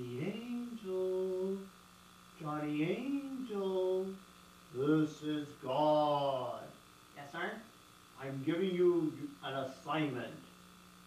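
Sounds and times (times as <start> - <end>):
person humming: 0.0 - 1.7, 2.4 - 4.2, 4.8 - 6.7
faint electrical buzz: 0.0 - 11.0.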